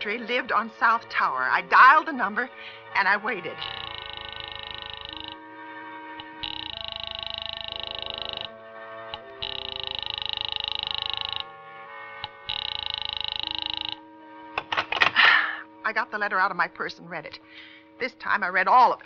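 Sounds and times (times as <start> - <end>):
background music: 0.0 - 19.0
telephone ringing: 3.4 - 11.6, 12.2 - 14.8.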